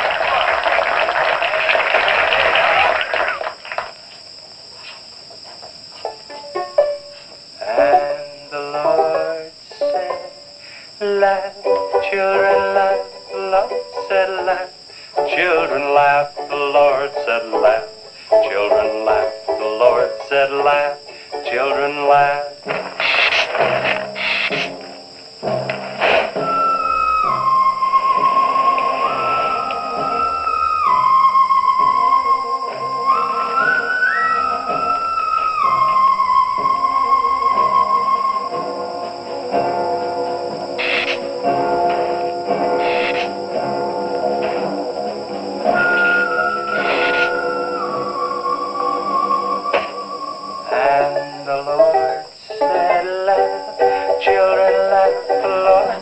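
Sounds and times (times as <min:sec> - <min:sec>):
theremin film score: 0:00.0 - 0:04.1, 0:06.1 - 0:56.0
crowd clapping: 0:00.0 - 0:04.2
young man singing: 0:07.6 - 0:09.8, 0:11.0 - 0:22.6, 0:50.7 - 0:56.0.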